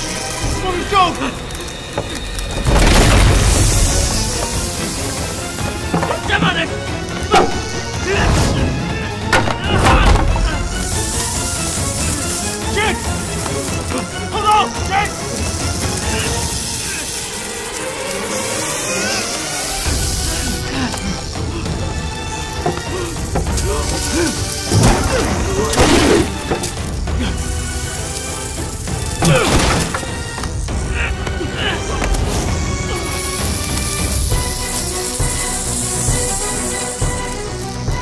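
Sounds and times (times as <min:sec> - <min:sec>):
dramatic film music: 0:00.0 - 0:38.0
crashing impact effects: 0:02.6 - 0:05.3.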